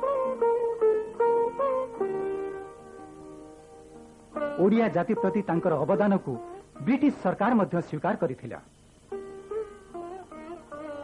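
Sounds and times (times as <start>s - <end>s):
plucked string instrument melody: 0.0s - 7.2s, 9.1s - 11.0s.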